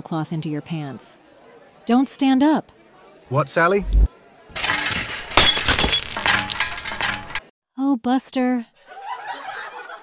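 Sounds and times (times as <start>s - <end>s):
glass ringing and clinking: 4.6s - 7.4s
dishes and glass shattering: 4.6s - 7.5s.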